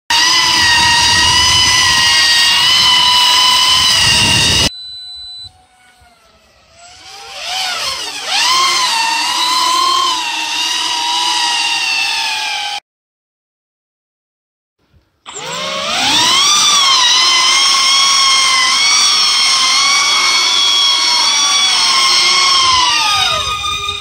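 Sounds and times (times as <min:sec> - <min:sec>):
electric motors and propellers whining: 0:00.1 - 0:12.8, 0:15.3 - 0:24.0.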